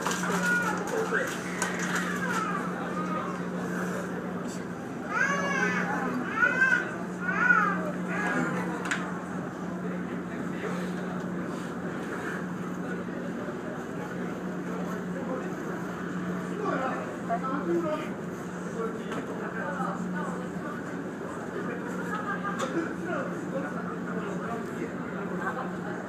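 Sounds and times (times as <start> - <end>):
ferry engine humming: 0.0 - 26.0.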